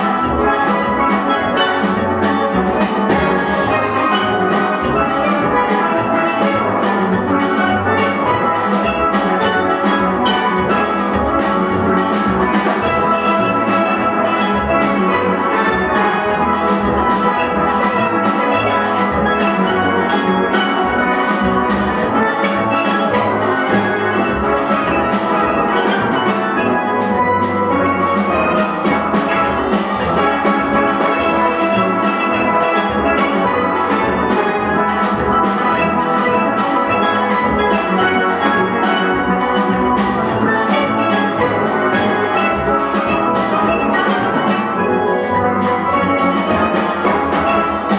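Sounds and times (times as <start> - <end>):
drums keeping a beat: 0.0 - 47.9
steelpans playing melody: 0.0 - 47.9.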